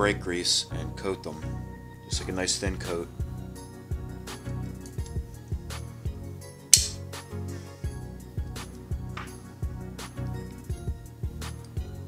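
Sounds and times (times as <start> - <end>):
background music with steady beat: 0.0 - 12.0
sharp hit: 6.8 - 7.0.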